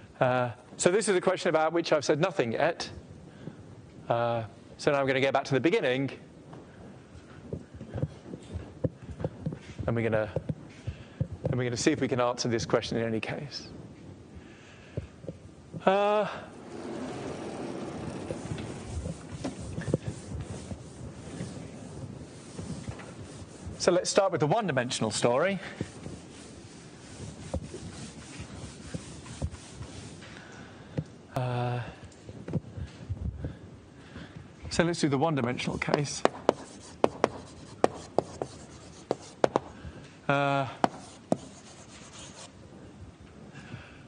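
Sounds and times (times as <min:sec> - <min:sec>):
room noise: 0:04.3 - 0:43.0
soft rustling: 0:16.5 - 0:30.5
chalk scratching: 0:16.6 - 0:30.3, 0:35.4 - 0:39.7, 0:40.8 - 0:42.5
chalk tapping on blackboard: 0:18.1 - 0:21.6, 0:22.3 - 0:24.2, 0:25.7 - 0:30.2, 0:35.4 - 0:39.7, 0:40.8 - 0:42.5.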